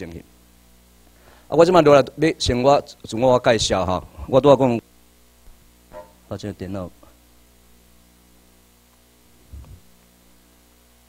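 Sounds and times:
electrical mains hum: 0.0 - 11.0
low muffled thump: 9.5 - 9.8.

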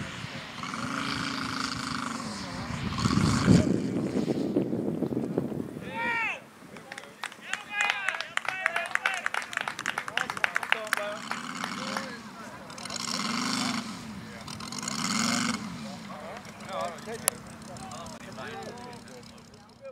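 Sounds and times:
model airplane radial engine: 0.0 - 5.5, 10.8 - 19.9.

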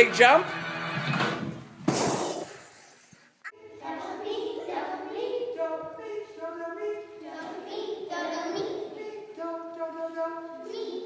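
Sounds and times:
song music: 3.4 - 11.0
classroom noise: 3.5 - 11.0.

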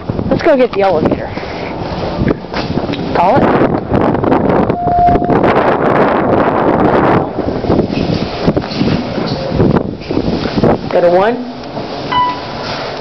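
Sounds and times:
wind buffeting microphone: 0.0 - 13.0
elevator hall chime: 4.7 - 5.6, 12.1 - 12.6.

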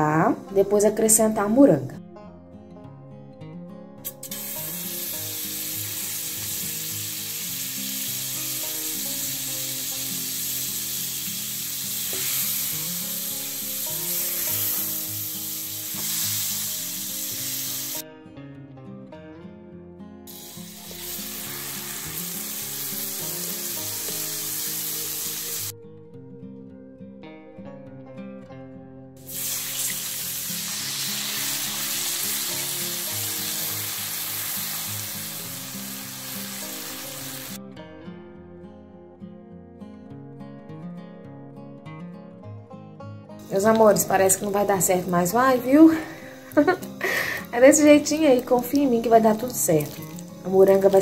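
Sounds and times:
soft background music: 0.0 - 51.0
butter sizzling in a frying pan: 4.2 - 18.0, 20.3 - 25.7, 29.2 - 37.6.

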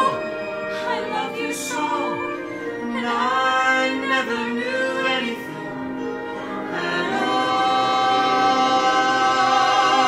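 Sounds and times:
man and woman singing a duet: 0.0 - 10.0.

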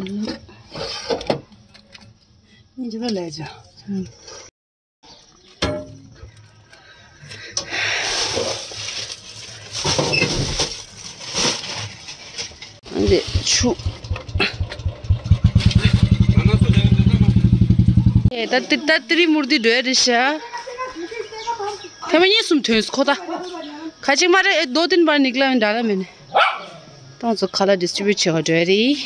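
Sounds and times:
foil containers rustling: 7.8 - 13.7
small engine chugging: 12.9 - 18.3.

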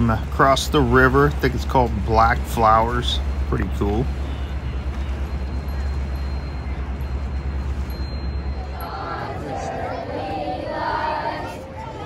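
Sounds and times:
water rushing: 0.0 - 9.8
boat engine droning: 0.0 - 12.0
wind: 0.0 - 12.0.

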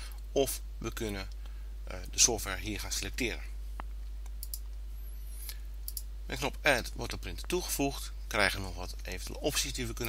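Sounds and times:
steady low hum: 0.0 - 10.0
computer mouse clicks: 4.2 - 4.7, 5.4 - 6.1.

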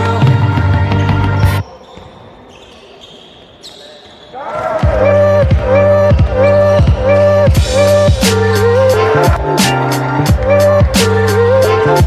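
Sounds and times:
electronic music with synth: 4.8 - 12.0.

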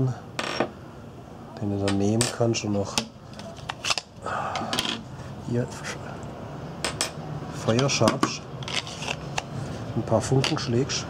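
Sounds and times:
short scraping rub: 8.6 - 9.3.

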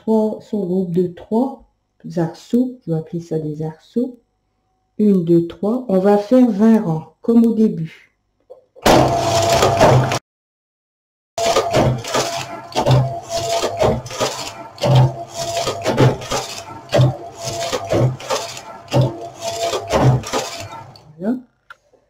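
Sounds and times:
knitting machine carriage clattering: 11.4 - 21.0.

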